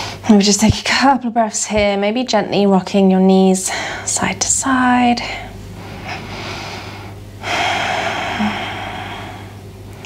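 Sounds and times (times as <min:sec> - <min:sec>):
woman breathing deeply: 0:05.2 - 0:10.0.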